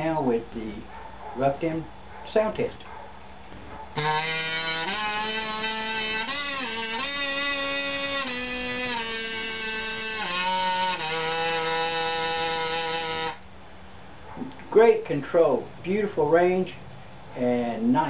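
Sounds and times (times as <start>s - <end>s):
kazoo humming notes: 4.0s - 13.5s.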